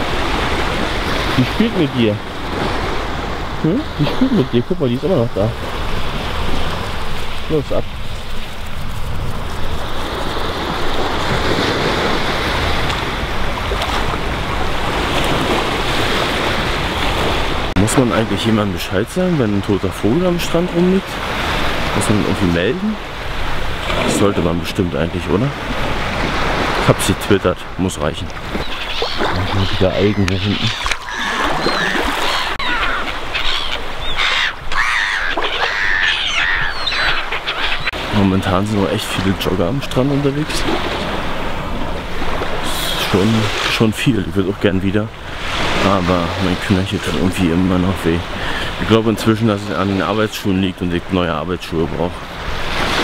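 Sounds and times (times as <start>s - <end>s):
small waves washing onto sand: 0.0s - 35.9s, 37.4s - 53.0s
loud arching bird calls: 28.6s - 38.0s.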